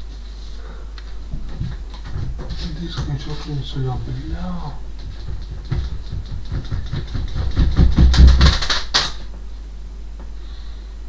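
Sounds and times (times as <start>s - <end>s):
objects scraping on wardrobe: 1.1s - 8.3s
sharp knock: 5.0s - 9.2s.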